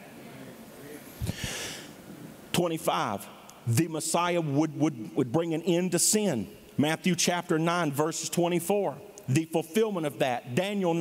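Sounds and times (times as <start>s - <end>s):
man breathing in: 1.2s - 2.0s.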